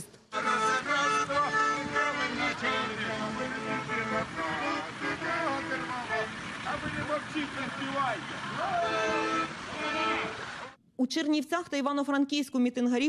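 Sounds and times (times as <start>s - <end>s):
car horns honking: 0.4s - 10.8s
people calling out: 1.2s - 10.8s.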